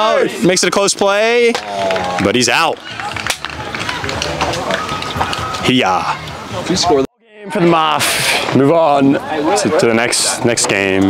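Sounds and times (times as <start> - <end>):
distant voices and chatter: 0.0 - 11.0.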